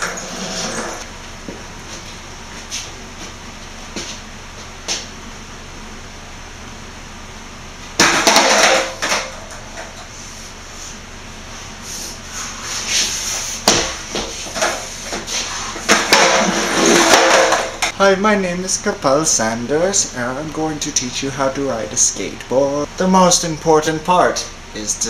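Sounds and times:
skateboard clattering and slapping: 0:08.0 - 0:09.6, 0:15.8 - 0:17.9
skateboard wheels rolling on concrete: 0:14.0 - 0:17.9.

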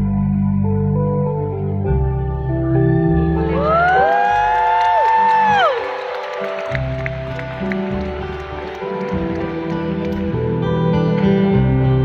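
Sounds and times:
audience whooping: 0:03.6 - 0:09.0.

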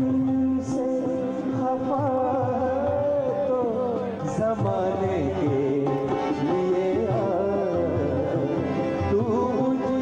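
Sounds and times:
keyboard: 0:00.0 - 0:10.0
man singing ornamented melody: 0:00.0 - 0:10.0
tabla: 0:00.0 - 0:10.0.

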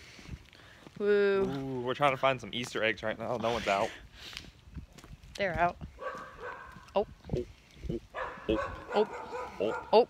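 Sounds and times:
dog barking: 0:06.0 - 0:06.8, 0:08.1 - 0:10.0.

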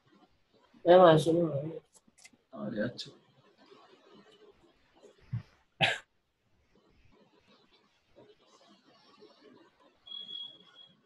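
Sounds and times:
person coughing: 0:05.8 - 0:06.1.

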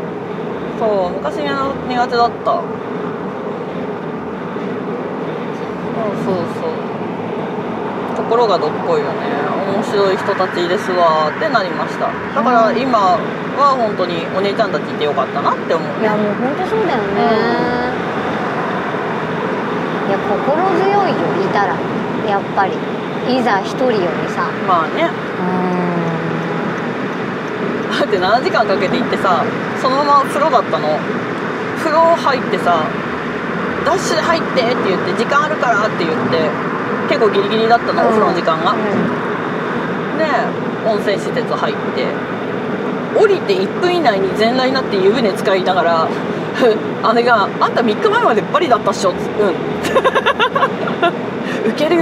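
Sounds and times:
car road and engine noise: 0:00.0 - 0:52.0
person humming: 0:25.4 - 0:26.8.

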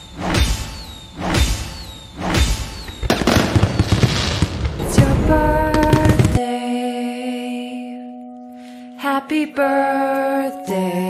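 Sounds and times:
rapid crackling hits: 0:02.3 - 0:06.4
background music: 0:04.5 - 0:11.0.

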